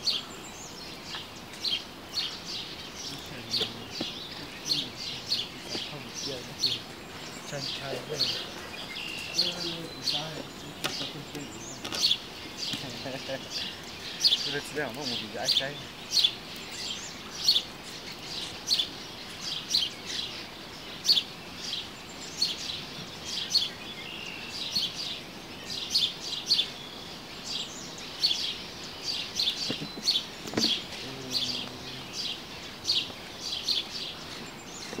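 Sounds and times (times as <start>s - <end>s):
bird chirping: 0.0s - 35.0s
faint outdoor background: 0.0s - 35.0s.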